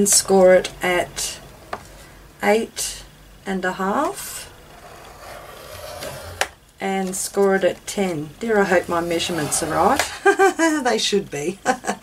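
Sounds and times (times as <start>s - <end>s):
stylus scraping cardboard: 4.7s - 6.5s, 8.9s - 10.1s.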